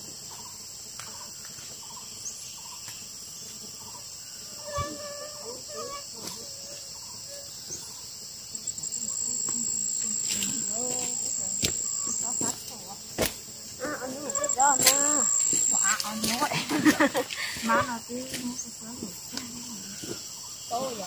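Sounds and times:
insects chirring: 0.0s - 21.0s
faint voices: 8.8s - 13.1s, 13.8s - 21.0s.

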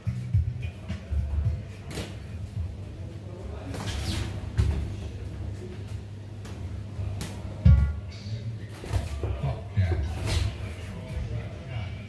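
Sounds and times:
background music: 0.0s - 2.8s.

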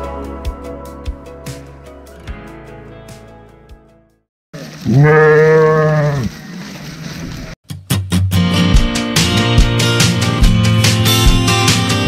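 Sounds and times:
music: 0.0s - 4.3s, 7.6s - 12.0s
sheep bleating: 4.8s - 6.3s.

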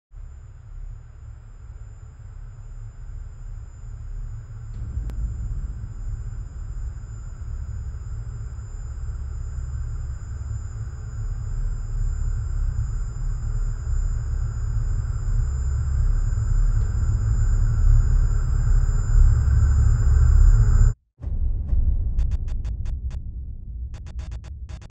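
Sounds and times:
deep rumbling drone: 0.2s - 24.9s
high-pitched ringing tone: 2.6s - 21.0s.

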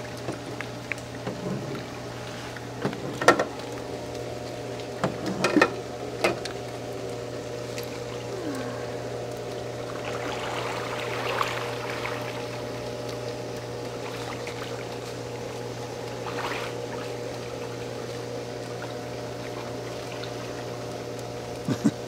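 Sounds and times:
steady low hum: 0.0s - 22.0s
water splashing in a pool: 0.0s - 22.0s.

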